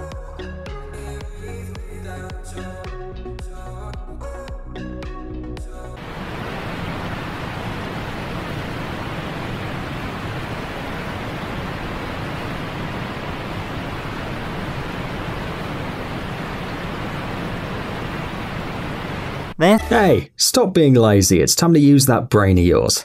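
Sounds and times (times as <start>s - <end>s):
river rapids rushing: 6.0s - 19.6s.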